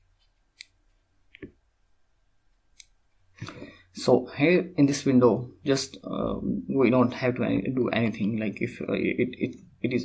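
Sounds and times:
man speaking: 0:04.0 - 0:10.0.

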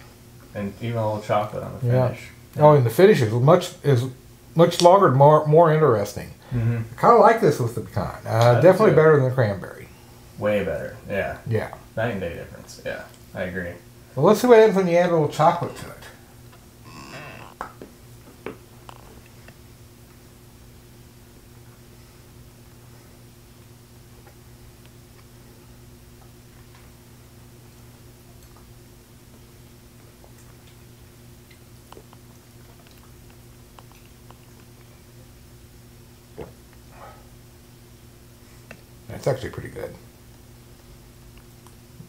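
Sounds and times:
faint room hum: 0:00.0 - 0:42.0
mouth chewing clicks and smacks: 0:30.2 - 0:34.9.

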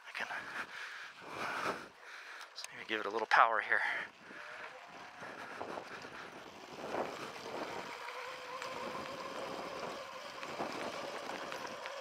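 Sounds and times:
tyres rolling on gravel: 0:00.2 - 0:12.0
electric motor whine: 0:04.1 - 0:12.0.

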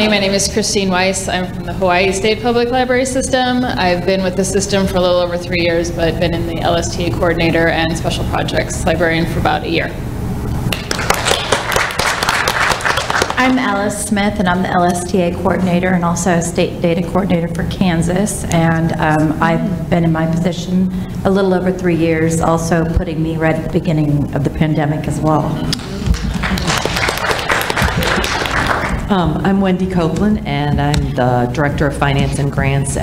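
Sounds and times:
audience applauding: 0:10.7 - 0:13.6, 0:25.8 - 0:29.1
microphone handling thumps: 0:28.9 - 0:31.3.

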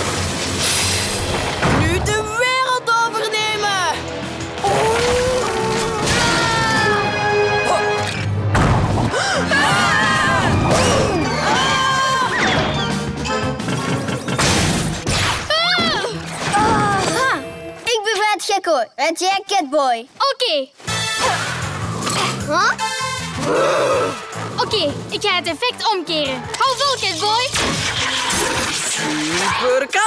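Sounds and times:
ice cracking and shattering: 0:00.0 - 0:01.7, 0:04.6 - 0:06.9, 0:26.8 - 0:30.0
background music: 0:00.0 - 0:19.0, 0:20.8 - 0:30.0.

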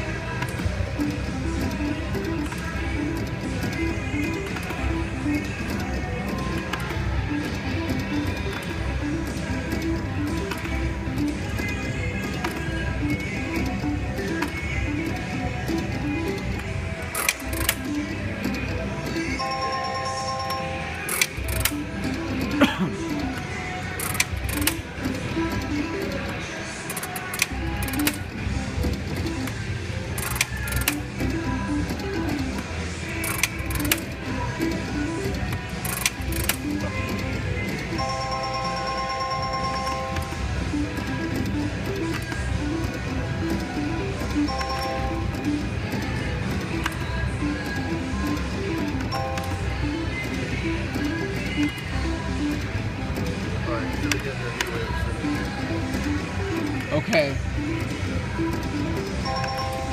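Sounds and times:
slot machine reel-spin tune: 0:00.0 - 0:59.9.

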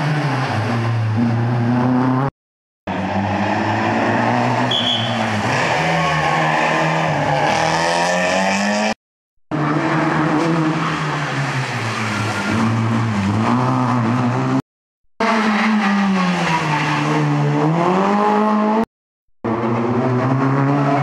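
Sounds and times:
rally car engines revving: 0:00.0 - 0:02.3, 0:02.9 - 0:14.6, 0:15.2 - 0:18.9, 0:19.5 - 0:21.0.

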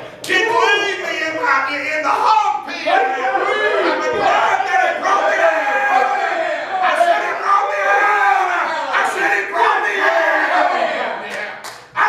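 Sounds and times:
congregation voices calling out: 0:00.0 - 0:12.0
preacher hollering in sing-song: 0:00.3 - 0:11.1.

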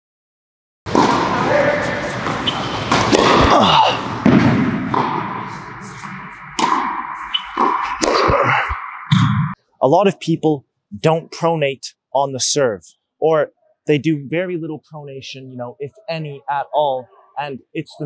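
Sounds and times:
tennis racket hitting ball: 0:00.9 - 0:09.4.

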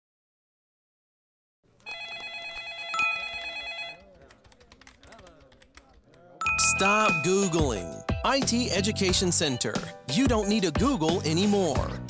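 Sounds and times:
telephone ringing: 0:01.8 - 0:04.2, 0:06.4 - 0:08.0
computer keyboard typing: 0:01.9 - 0:07.5.

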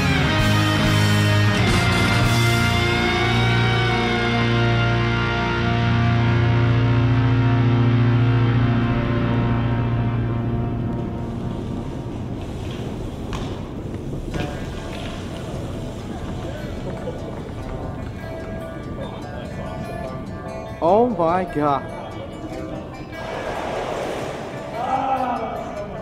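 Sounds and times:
rock music with guitar: 0:00.0 - 0:11.6
bike rolling on concrete: 0:10.8 - 0:21.2, 0:22.3 - 0:25.4.

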